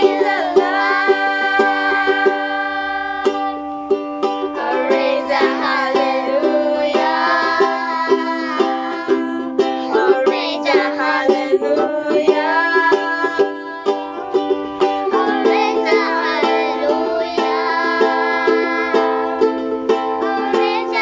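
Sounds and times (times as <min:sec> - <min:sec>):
woman and children singing: 0:00.0 - 0:03.8, 0:04.5 - 0:14.2, 0:14.9 - 0:21.0
strummed ukulele: 0:00.0 - 0:21.0.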